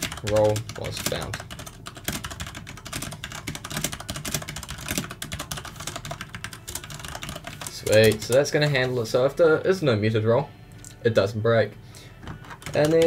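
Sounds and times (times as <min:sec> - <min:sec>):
fast typing on keyboard: 0:00.0 - 0:08.5, 0:12.4 - 0:13.0.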